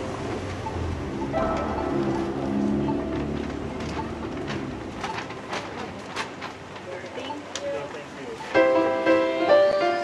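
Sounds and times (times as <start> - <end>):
music track: 0.0 - 5.6
street ambience: 0.0 - 10.0.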